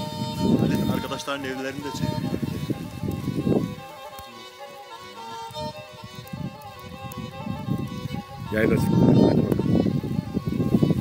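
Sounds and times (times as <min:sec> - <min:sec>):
bowed fiddle folk music: 0:00.0 - 0:11.0.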